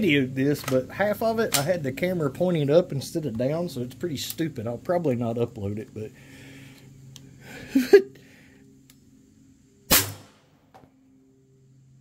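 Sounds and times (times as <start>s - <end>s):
air launcher shot crack: 9.9s - 10.6s.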